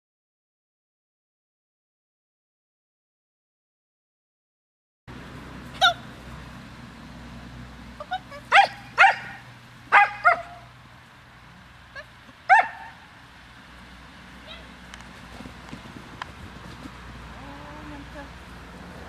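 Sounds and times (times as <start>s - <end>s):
small dog barking: 8.1s - 10.7s, 12.0s - 13.0s.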